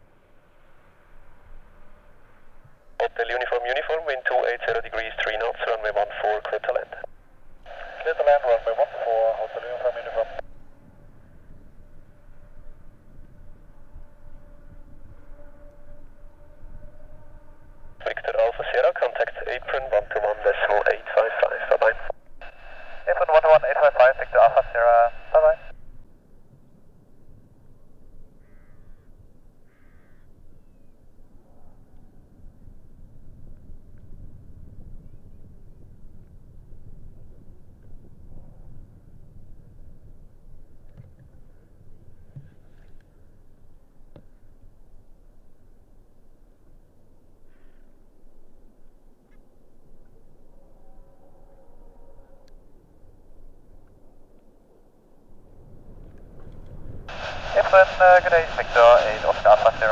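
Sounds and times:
faint low rumble: 0:00.0 - 0:59.9
radio transmissions: 0:03.0 - 0:07.1, 0:07.7 - 0:10.4, 0:18.0 - 0:25.8, 0:57.1 - 0:59.9.

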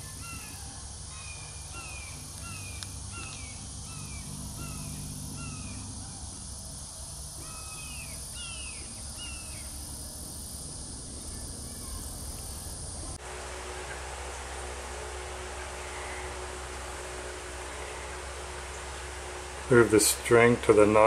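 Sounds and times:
bird calling: 0:00.0 - 0:10.5, 0:11.1 - 0:21.0
steady low hum: 0:00.0 - 0:21.0.

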